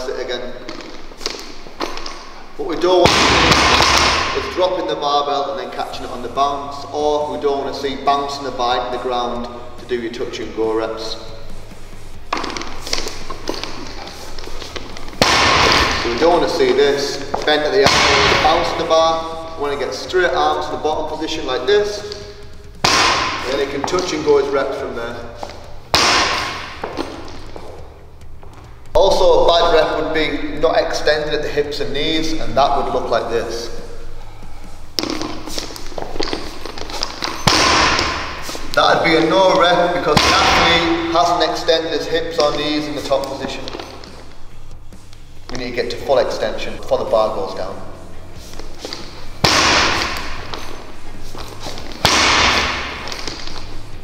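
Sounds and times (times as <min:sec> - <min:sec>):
barbell plates hitting floor: 0:03.0 - 0:04.7, 0:14.8 - 0:18.8, 0:22.8 - 0:24.2, 0:35.0 - 0:38.7
barbell thudding on rubber floor: 0:15.2 - 0:16.3.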